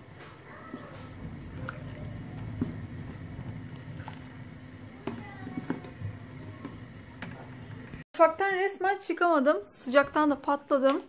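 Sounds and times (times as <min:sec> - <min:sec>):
pot of milk rumbling: 0:00.0 - 0:08.0.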